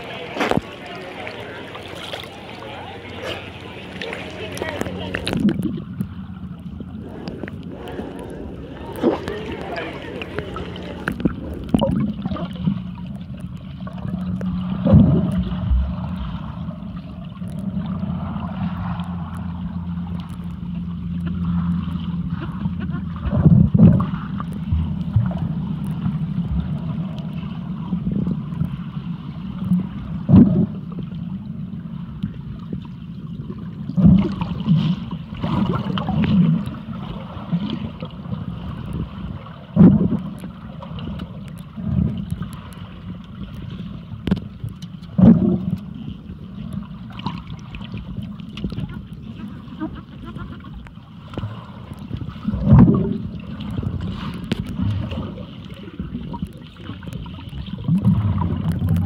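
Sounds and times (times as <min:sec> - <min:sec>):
swirling water surges: 0:00.0 - 0:59.0
underwater rumble of moving water: 0:00.0 - 0:59.0
underwater thumps: 0:14.8 - 0:15.9, 0:30.2 - 0:30.8, 0:33.9 - 0:34.8, 0:39.7 - 0:40.4, 0:44.2 - 0:45.9, 0:52.5 - 0:55.3.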